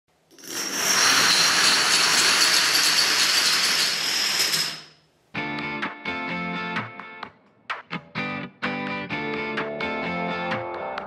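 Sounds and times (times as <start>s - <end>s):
strummed guitar music: 5.4s - 10.8s.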